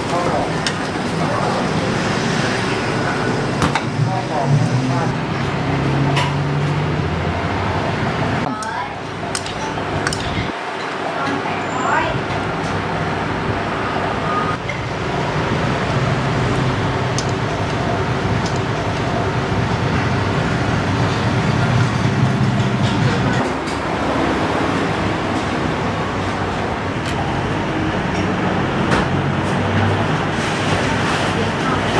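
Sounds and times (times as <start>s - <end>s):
street eatery noise: 0.0s - 31.9s
traffic rumble: 0.0s - 31.9s.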